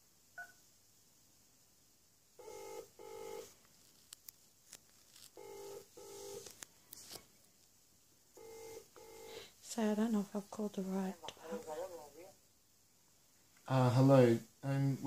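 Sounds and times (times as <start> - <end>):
telephone ringback tone: 2.4 - 3.5, 5.4 - 6.4, 8.4 - 9.4.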